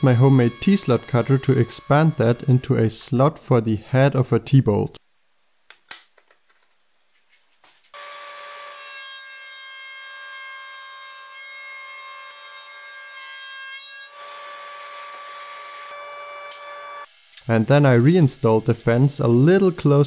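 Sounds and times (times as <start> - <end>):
router whining cutting wood: 0.0 - 2.7.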